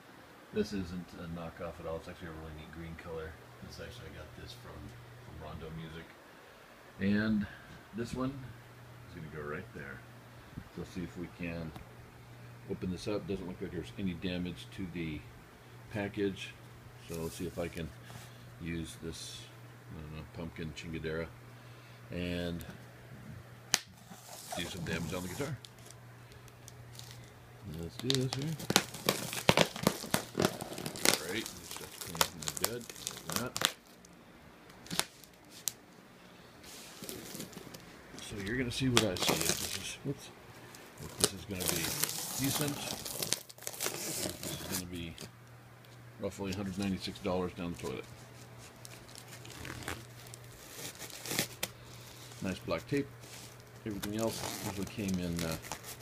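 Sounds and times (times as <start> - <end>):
plastic package crinkling: 24.0 - 34.2, 34.8 - 35.8, 36.8 - 40.0, 40.7 - 45.0, 47.7 - 52.6, 53.2 - 56.0
man speaking: 24.5 - 25.6, 38.2 - 40.4, 41.0 - 43.0, 46.2 - 48.0.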